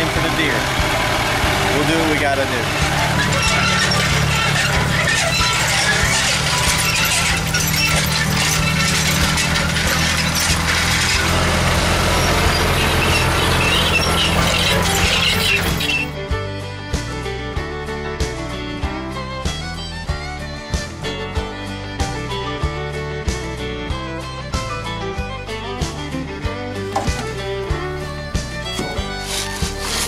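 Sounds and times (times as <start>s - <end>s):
harrow clattering over rough ground: 0.0s - 16.2s, 26.8s - 30.0s
tractor engine running: 0.0s - 17.2s, 25.6s - 30.0s
fiddle-led bluegrass music: 0.0s - 30.0s.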